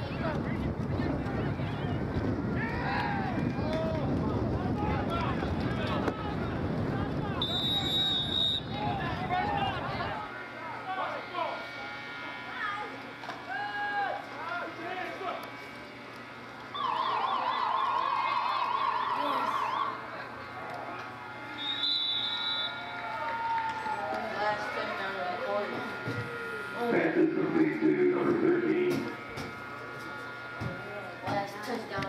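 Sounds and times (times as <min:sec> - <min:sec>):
spectators shouting and cheering: 0:01.2 - 0:15.2, 0:16.7 - 0:27.1
rapidly warbling siren-like tone: 0:16.7 - 0:20.2
short high whistle-like tone: 0:21.6 - 0:22.9.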